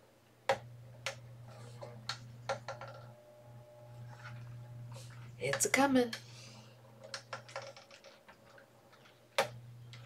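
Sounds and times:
laminator humming: 0.4s - 10.0s.

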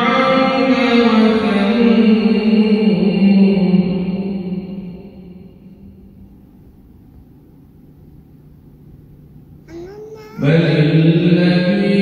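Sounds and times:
man chanting into a microphone: 10.4s - 12.0s.

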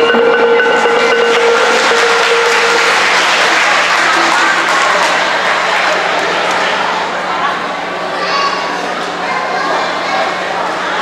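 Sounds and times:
mallet percussion music: 0.0s - 4.6s
audience applause: 0.0s - 7.3s.

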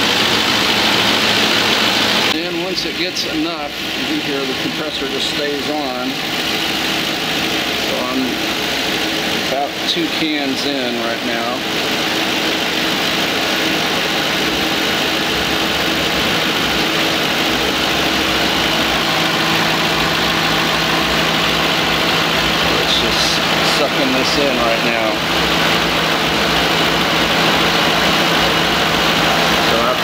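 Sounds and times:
car engine idling: 0.0s - 30.0s.

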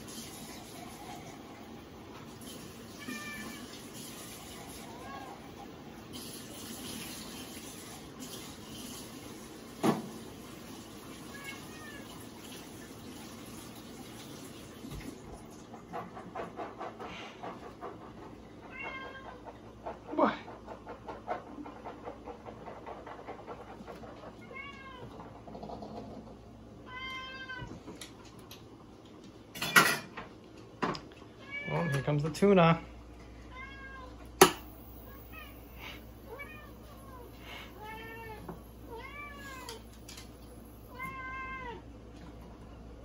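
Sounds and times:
cat meowing: 2.9s - 3.8s, 11.3s - 12.1s, 18.7s - 19.4s, 24.4s - 25.2s, 26.8s - 27.8s, 31.4s - 32.1s, 33.5s - 34.2s, 35.0s - 39.9s, 40.9s - 41.8s.

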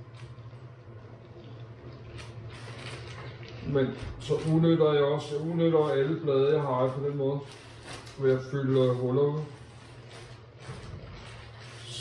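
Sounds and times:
steady low hum: 0.0s - 12.0s
plastic sleeves and comics rustling: 1.4s - 12.0s.

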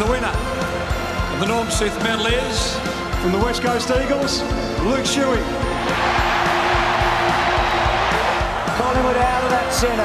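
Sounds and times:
background music with beat: 0.0s - 10.0s
stadium crowd noise: 4.8s - 10.0s
commentator talking: 8.6s - 10.0s.

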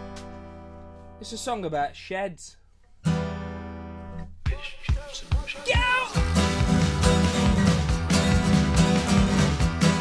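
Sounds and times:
acoustic guitar strumming: 0.0s - 1.2s, 2.8s - 10.0s.

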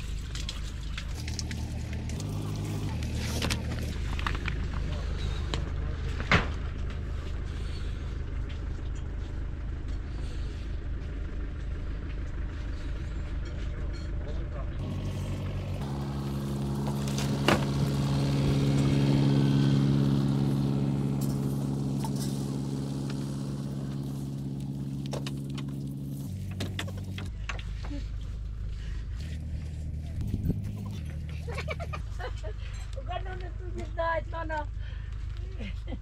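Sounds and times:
motor droning: 0.0s - 13.5s, 14.8s - 33.0s
low rumble: 0.0s - 36.0s.

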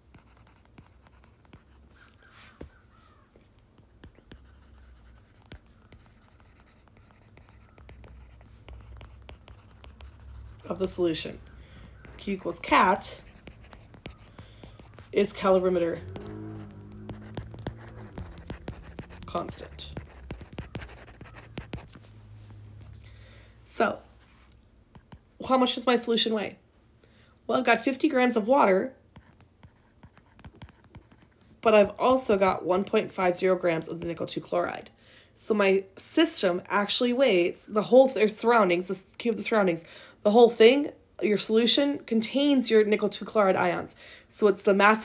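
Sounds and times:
faint low hum: 0.0s - 32.9s
low hum: 13.1s - 23.6s
stylus tapping on tablet screen: 13.3s - 22.0s.

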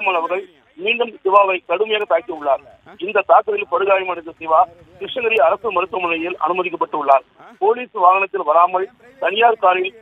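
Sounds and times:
person talking over telephone: 0.0s - 10.0s.

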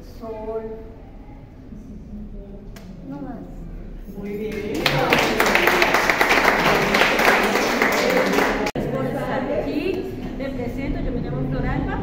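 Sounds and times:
small group applauding: 4.4s - 8.8s.

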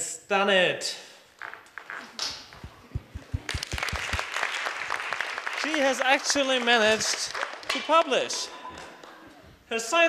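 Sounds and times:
audience applause: 2.9s - 9.2s
close hand claps: 3.3s - 9.2s.

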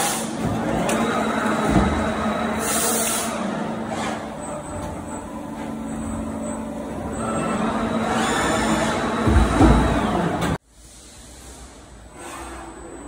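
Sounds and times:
machinery humming: 0.0s - 10.6s
faint high machine whines: 4.2s - 9.3s.

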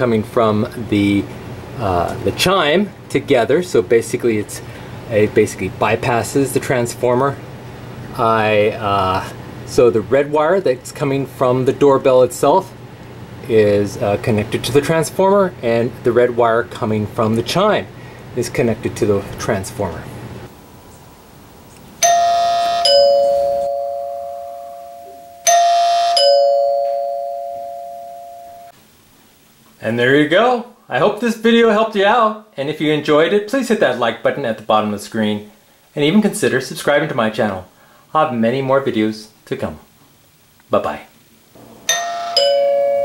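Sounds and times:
doorbell ding-dong chime: 22.0s - 28.7s, 41.9s - 43.0s.

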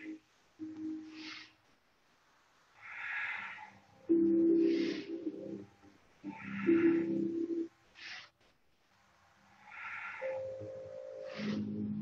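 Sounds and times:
person breathing in and out: 1.0s - 1.7s, 2.8s - 5.6s, 6.2s - 8.4s, 9.6s - 12.0s
soft background music: 3.8s - 7.8s, 9.5s - 12.0s.

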